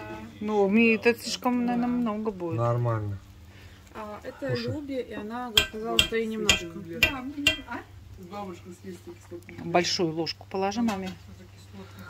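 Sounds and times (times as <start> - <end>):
background talk: 0.0 - 3.2, 3.9 - 12.0
metal spoon clinking on pot: 5.6 - 7.8.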